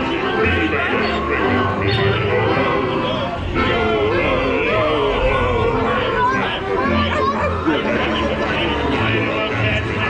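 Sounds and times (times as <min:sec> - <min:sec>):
overlapping chattering voices: 0:00.0 - 0:10.0
sing-song voices: 0:00.0 - 0:10.0.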